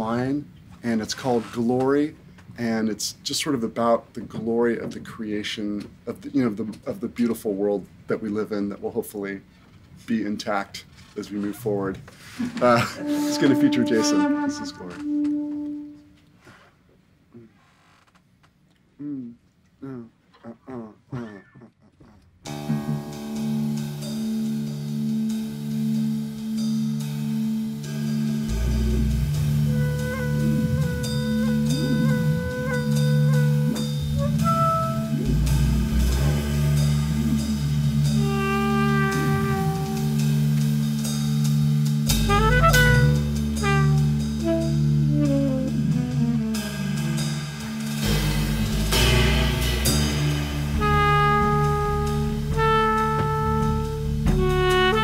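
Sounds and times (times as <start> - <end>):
drums: 0.0 - 16.8, 22.4 - 55.0
tenor saxophone melody: 12.6 - 16.4, 22.5 - 55.0
keyboard chords: 12.9 - 16.2, 22.5 - 55.0
electric bass: 22.5 - 55.0.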